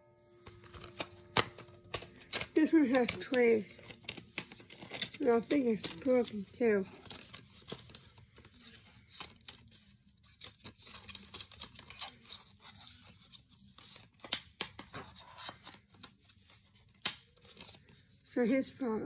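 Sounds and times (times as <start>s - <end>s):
plastic cases clicking and rustling: 0.4s - 9.8s.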